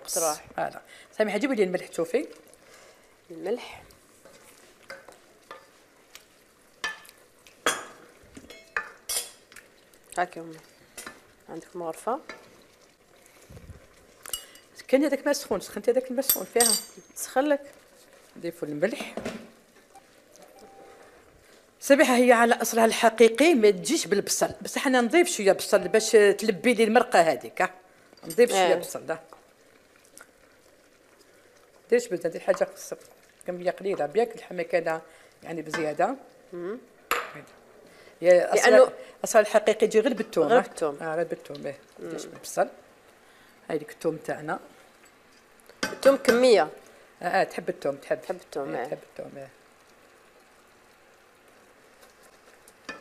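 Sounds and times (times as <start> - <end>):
woman speaking: 0.0 - 2.4, 3.3 - 3.9, 10.2 - 10.6, 21.8 - 27.6, 28.3 - 29.2, 38.2 - 42.7, 45.9 - 49.5
faint hiss from pot: 0.0 - 53.0
meat sizzling: 0.0 - 53.0
wooden spoon scraping a pot: 4.1 - 5.9.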